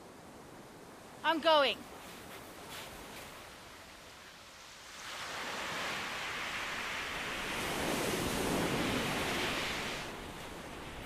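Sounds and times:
waves washing onto shingle: 1.5 - 11.0.

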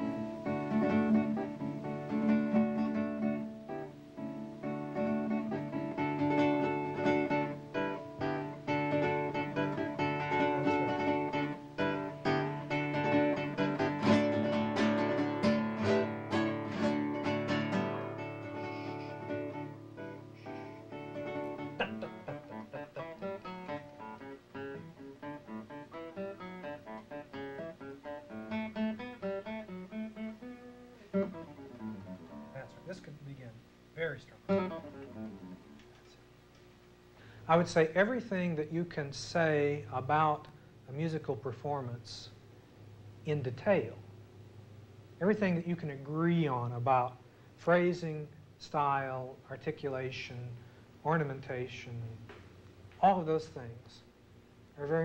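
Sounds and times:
classical guitar playing: 0.0 - 33.3, 34.4 - 36.0.

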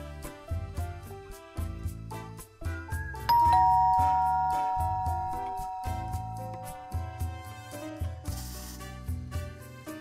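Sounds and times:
two-note ding-dong chime: 3.3 - 8.2.

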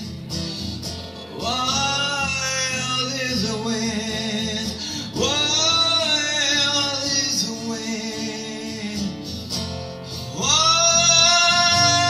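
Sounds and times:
acoustic guitar: 0.0 - 12.0
man singing: 1.3 - 9.5, 10.1 - 12.0.

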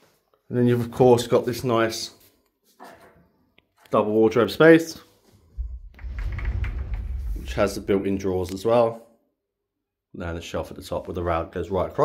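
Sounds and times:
sliding wardrobe door rolling: 5.6 - 8.1.

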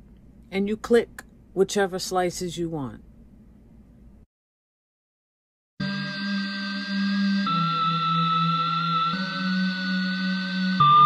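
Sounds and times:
sampled music loop held tones: 5.8 - 11.0.

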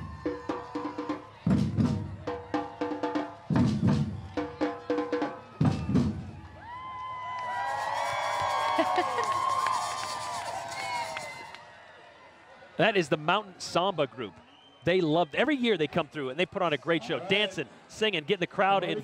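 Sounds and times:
crowd cheering and calling out: 0.0 - 17.7.

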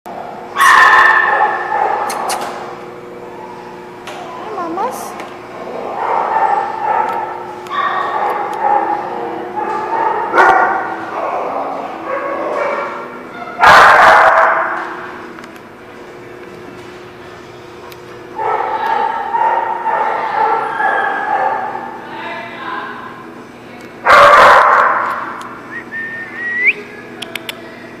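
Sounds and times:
dog barking: 0.6 - 2.4, 5.9 - 10.9, 12.0 - 13.0, 13.6 - 14.8, 18.4 - 21.9, 24.0 - 25.3.

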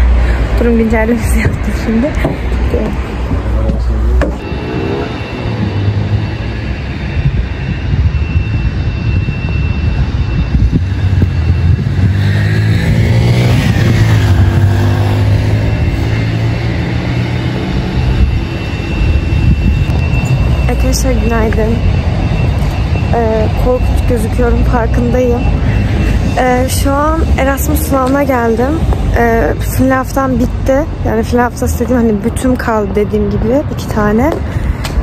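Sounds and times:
steady low traffic rumble: 0.0 - 35.0
vehicle engine passing by: 1.8 - 7.1, 10.8 - 20.7.

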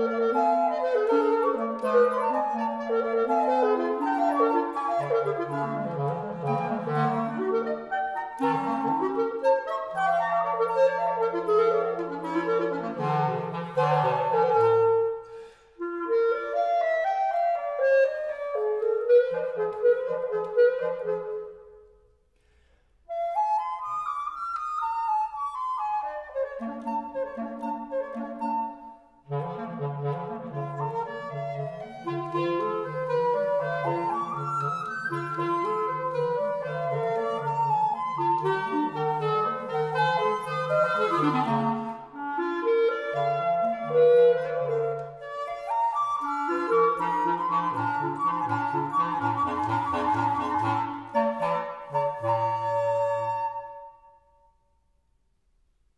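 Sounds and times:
woodwind trio playing: 0.0 - 54.6.

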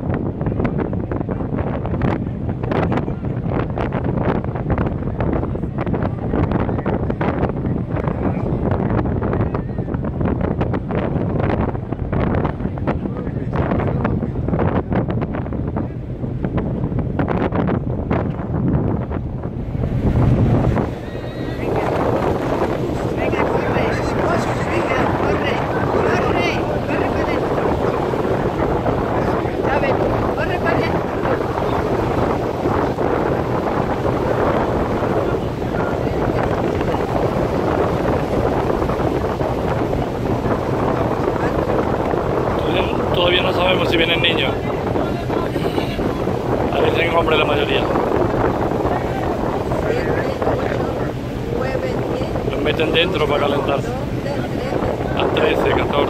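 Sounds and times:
low rumble: 0.0 - 56.0
wind buffeting microphone: 0.0 - 56.0.

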